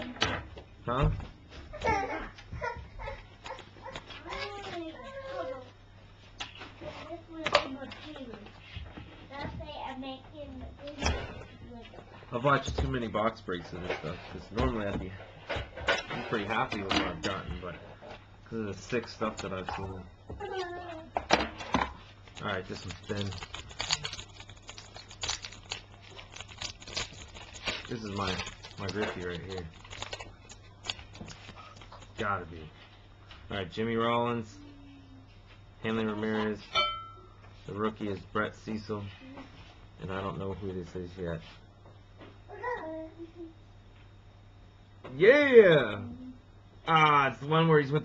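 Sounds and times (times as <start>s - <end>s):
cards and packaging rustling: 21.9s - 32.7s.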